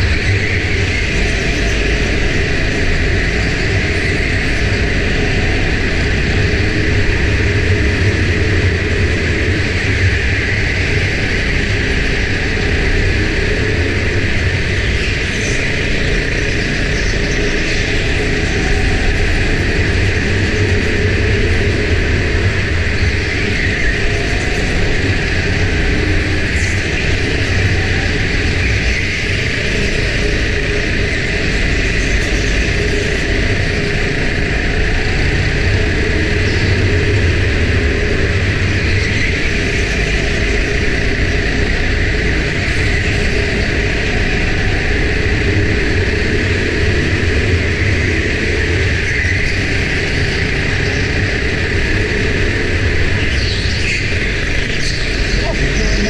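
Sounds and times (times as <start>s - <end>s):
go-kart engine and rumble: 0.0s - 56.0s.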